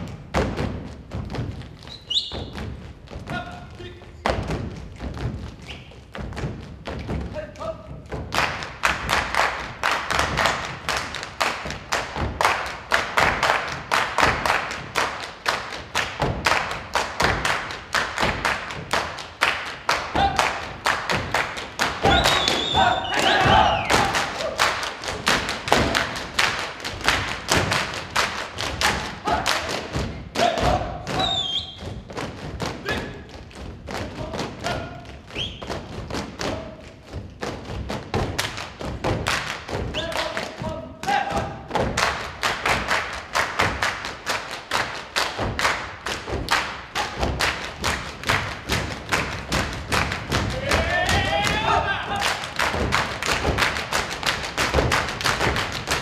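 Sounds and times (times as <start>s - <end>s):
boots stamping on stage floor: 0.0s - 44.2s, 45.3s - 56.0s
people clapping: 8.1s - 56.0s.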